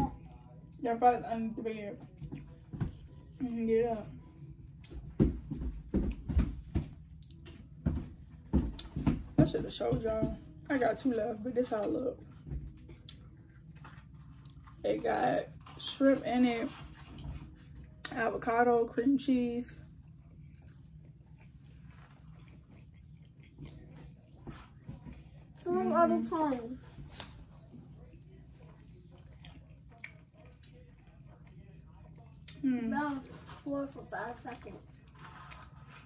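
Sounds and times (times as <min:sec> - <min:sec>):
low steady hum: 0:00.0 - 0:36.0
faint chewing: 0:11.6 - 0:18.4, 0:19.6 - 0:36.0.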